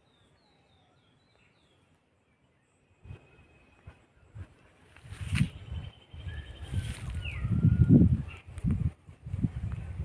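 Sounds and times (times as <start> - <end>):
birds whistling: 0.0 - 8.5.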